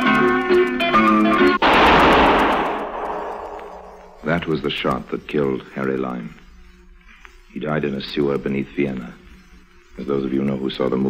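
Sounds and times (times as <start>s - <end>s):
echoing gunshot: 1.6s - 4.7s.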